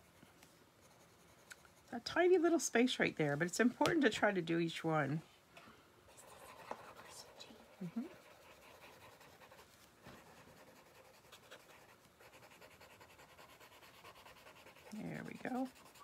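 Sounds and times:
pencil scratching on paper: 0:00.8 - 0:02.6, 0:06.1 - 0:16.0.

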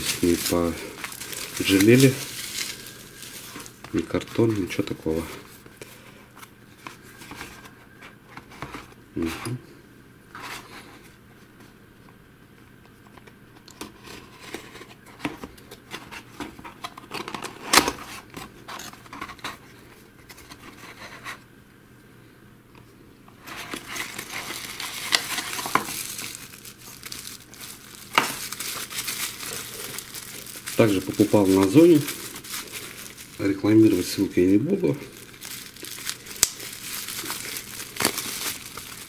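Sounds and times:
bubble wrap crinkling: 0:00.0 - 0:05.8, 0:23.4 - 0:39.0.

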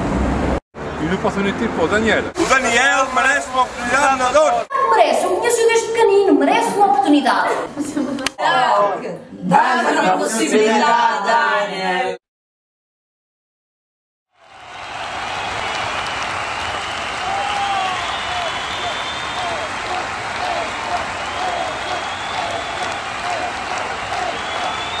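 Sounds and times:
audience applauding: 0:14.3 - 0:25.0
voices calling out: 0:14.9 - 0:25.0.

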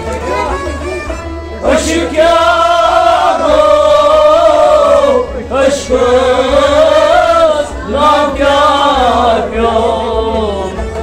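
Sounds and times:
harmonium: 0:00.0 - 0:11.0.

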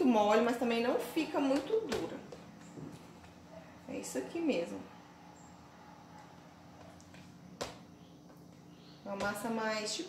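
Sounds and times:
dough squelching: 0:00.0 - 0:03.5, 0:05.9 - 0:10.0.

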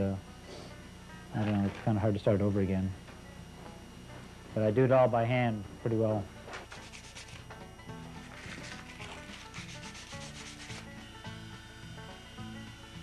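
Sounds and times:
belt sander rasping on wood: 0:08.2 - 0:11.4.

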